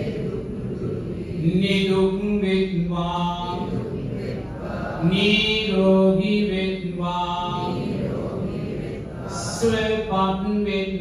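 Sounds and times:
person chanting slowly: 0.0s - 10.5s.

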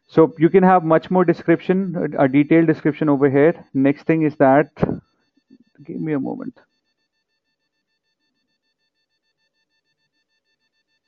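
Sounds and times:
faint high-pitched tone: 0.1s - 5.0s, 5.8s - 6.5s.

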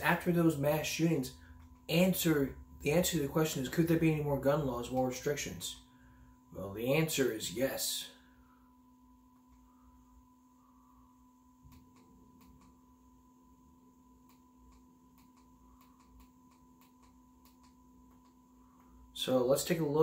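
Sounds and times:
faint electrical hum and whine: 0.0s - 20.0s.

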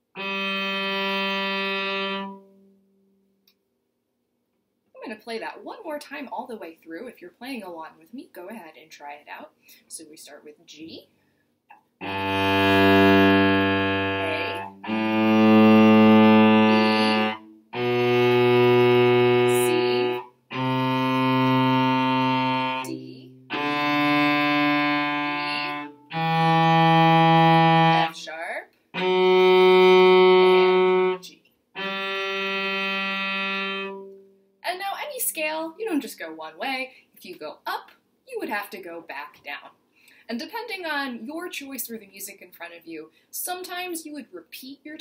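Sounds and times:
cello playing a scale: 0.0s - 2.8s, 12.0s - 28.3s, 28.9s - 34.3s
woman's voice: 5.0s - 11.0s, 16.6s - 17.3s, 19.4s - 20.2s, 28.1s - 28.7s, 34.6s - 39.7s, 40.3s - 45.0s.

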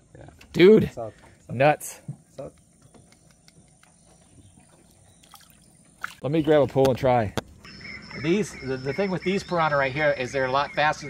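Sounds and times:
water trickling and dripping: 2.1s - 6.8s.

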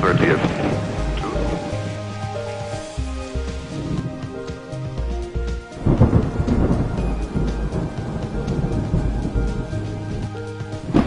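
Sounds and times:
background music: 0.0s - 11.0s
rain: 0.0s - 11.0s
thunder rumbling: 0.0s - 11.0s.

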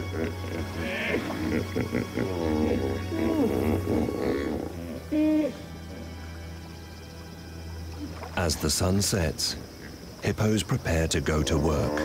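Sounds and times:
hippopotamuses calling: 0.0s - 6.3s.

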